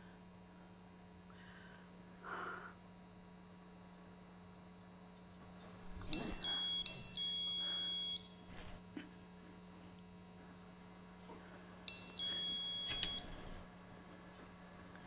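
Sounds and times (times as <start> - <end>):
high electronic alarm chime: 6.1 - 8.5, 11.9 - 13.6.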